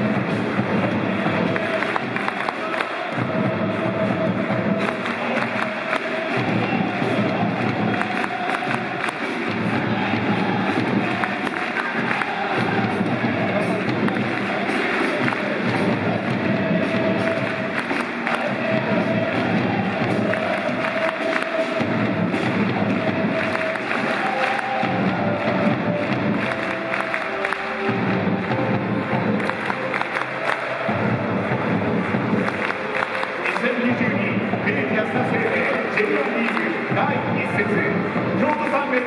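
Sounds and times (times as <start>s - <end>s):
crowd noise: 0.0s - 39.0s
music over loudspeakers: 0.0s - 39.0s.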